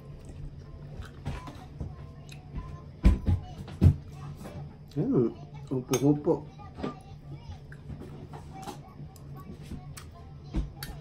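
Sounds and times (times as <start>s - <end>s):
cutlery clinking on ceramic bowl: 5.9s - 6.2s.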